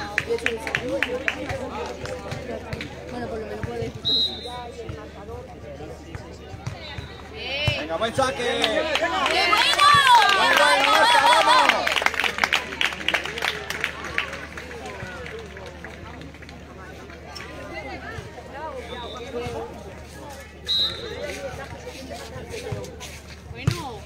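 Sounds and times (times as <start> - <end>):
distant voices and chatter: 0.0 - 24.0.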